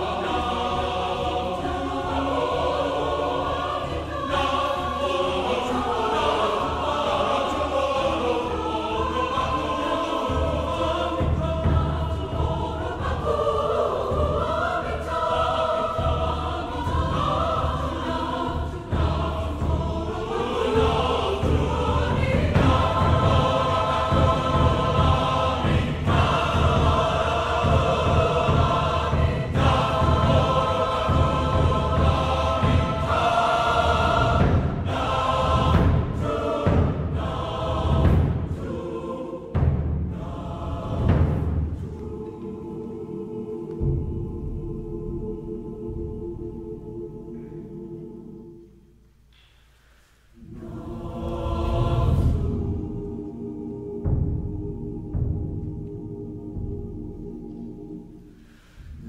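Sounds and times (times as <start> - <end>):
large choir singing: 0.0 - 59.0
low drums pulsing: 4.8 - 42.8.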